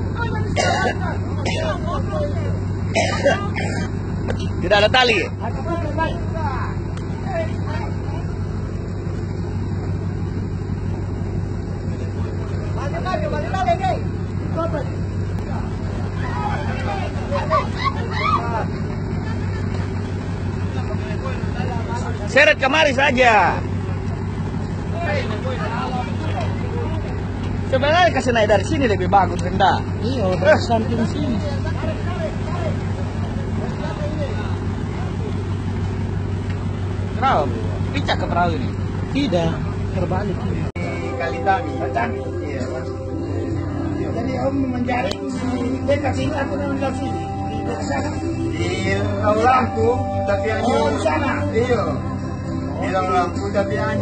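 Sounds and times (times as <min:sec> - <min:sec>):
faint voices: 0:00.0 - 0:54.0
ship engine drone: 0:00.0 - 0:54.0
people calling out: 0:15.2 - 0:20.7, 0:40.8 - 0:54.0.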